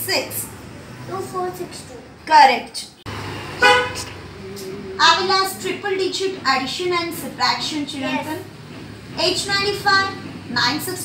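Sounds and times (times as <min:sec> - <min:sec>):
vehicle horn toot: 0:03.6 - 0:04.1.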